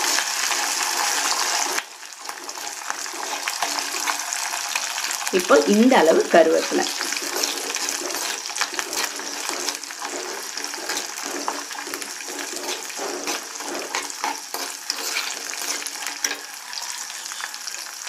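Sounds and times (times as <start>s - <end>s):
garlic sizzling in hot oil: 0.0s - 18.0s
steel spoon stirring and clinking: 2.2s - 4.3s, 6.6s - 17.0s.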